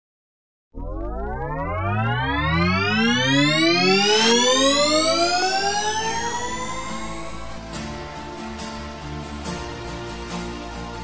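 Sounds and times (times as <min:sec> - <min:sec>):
synth tone gliding downward: 0:00.7 - 0:07.9
synthesizer riser: 0:00.7 - 0:09.2
noise swoosh: 0:00.8 - 0:08.6.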